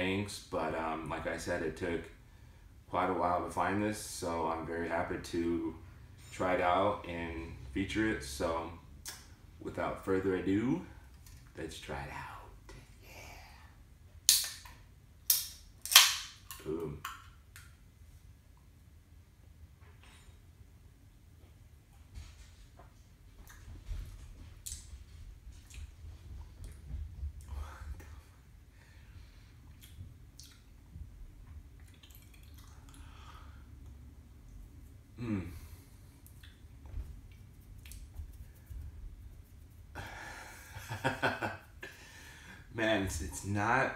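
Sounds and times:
low room hum: 0.0 - 43.9
lip smacks and mouth sounds: 24.6 - 26.0, 29.6 - 30.9, 31.6 - 35.1, 36.2 - 40.0.

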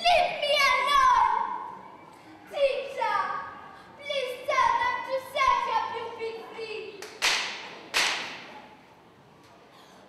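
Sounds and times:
sharp smacks echoing in a hall: 7.0 - 8.8.

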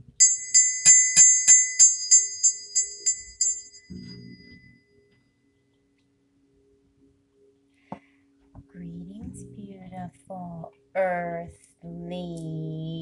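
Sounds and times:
brass hand bell ringing: 0.0 - 4.8.

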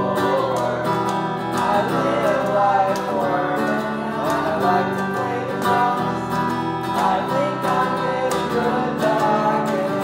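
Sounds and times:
acoustic guitar strumming: 0.0 - 10.0
person singing: 0.0 - 10.0.

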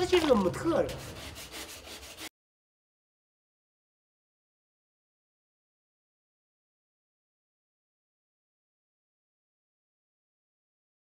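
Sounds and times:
metal scraper scraping wood: 0.0 - 2.3.

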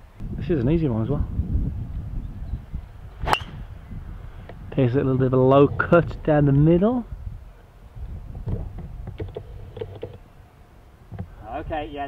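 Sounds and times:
golf club striking ball: 3.2 - 3.7.

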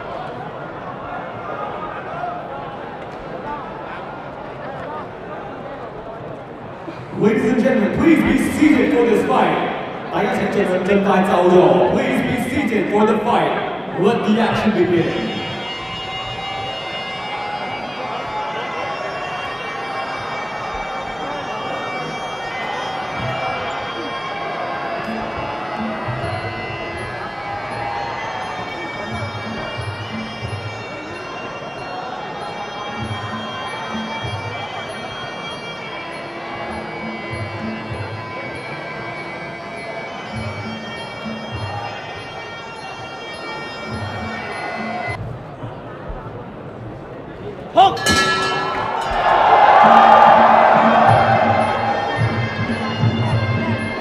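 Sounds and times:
reedy oboe melody: 14.8 - 27.3.

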